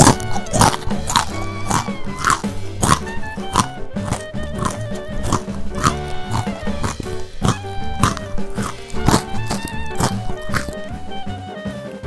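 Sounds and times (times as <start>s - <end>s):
crunching bites of food: 0.0s - 11.2s
background music: 0.0s - 12.0s.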